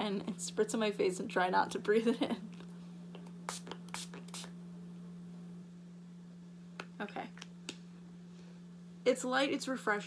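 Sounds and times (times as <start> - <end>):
steady low hum: 0.0 - 10.0
spray bottle spritzing: 3.5 - 4.5.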